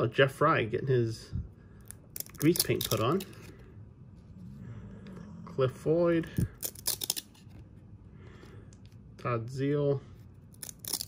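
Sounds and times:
trading cards clicking and snapping: 1.9s - 3.5s, 6.4s - 7.4s, 10.6s - 11.0s.

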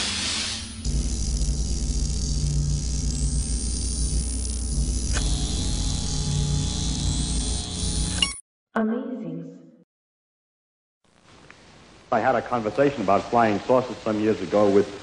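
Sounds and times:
rush of hiss: 0.0s - 0.8s.

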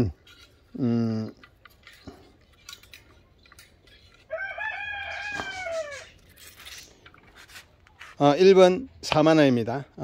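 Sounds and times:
rooster crowing: 4.3s - 6.2s.

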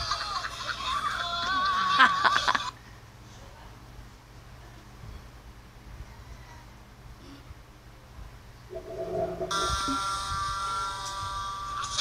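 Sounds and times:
steady high electronic tone: 8.7s - 10.0s.

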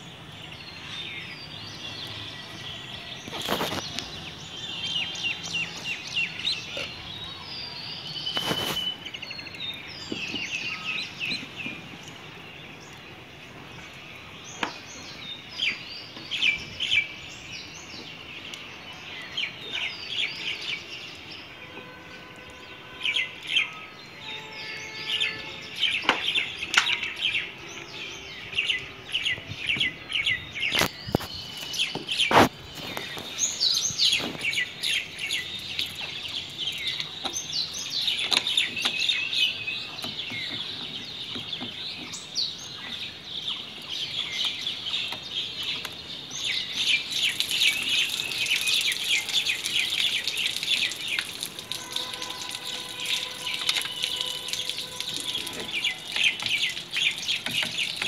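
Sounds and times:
small birds chirping: 0.0s - 21.6s, 24.9s - 58.0s.

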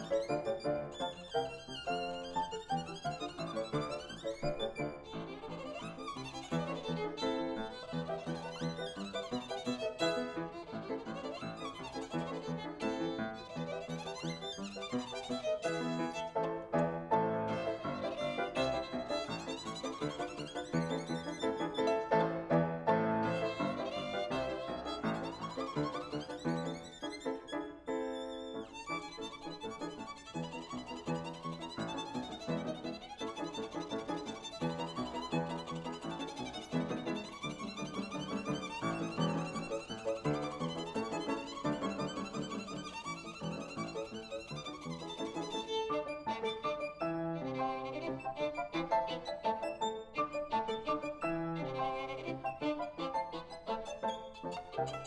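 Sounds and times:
violin playing short bowed notes: 0.0s - 22.3s, 23.2s - 27.5s
piano accompaniment: 0.0s - 55.0s
violin playing: 0.0s - 55.0s.

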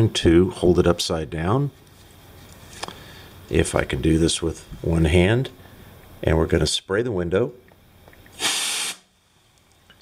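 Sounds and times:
compressed air spray hiss: 8.4s - 9.1s.

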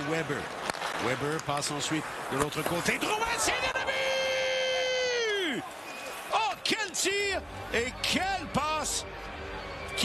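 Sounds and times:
excited commentary: 1.8s - 9.0s.

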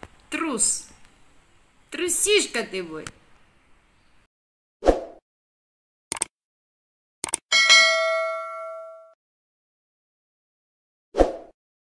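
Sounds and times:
quick double click: 6.1s - 6.3s, 7.2s - 7.4s
bright bell ding: 7.5s - 9.2s.

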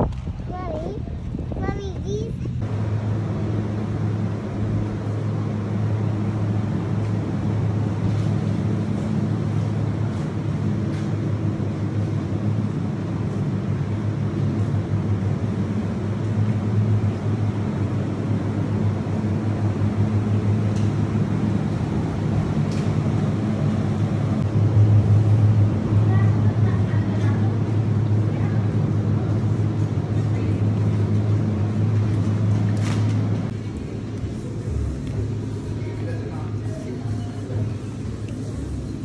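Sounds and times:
refrigeration fans humming: 0.0s - 39.0s.

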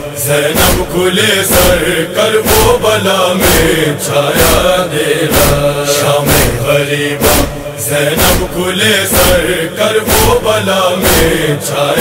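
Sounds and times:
chest-beating strikes: 0.0s - 11.4s
voices chanting a lament: 0.0s - 12.0s.

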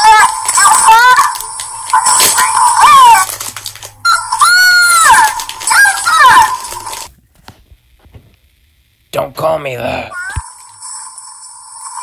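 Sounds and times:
high-pitched voice squealing: 0.0s - 3.4s, 4.0s - 6.9s, 10.1s - 10.4s.

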